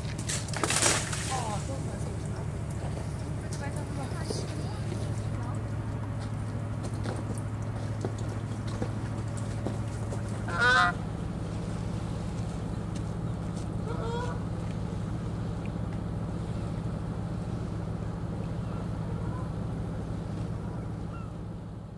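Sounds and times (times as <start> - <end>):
low hum: 0.0 - 21.9
waterbird honking: 10.4 - 11.1, 13.8 - 14.6, 18.5 - 19.6, 20.6 - 21.5.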